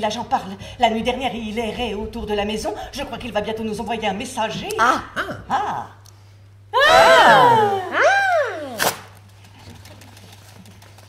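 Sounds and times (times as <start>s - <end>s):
sharp crack: 8.7s - 9.2s.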